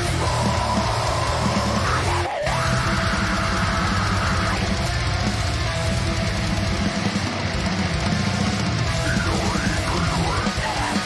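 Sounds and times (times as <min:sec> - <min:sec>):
death metal song: 0:00.0 - 0:11.0.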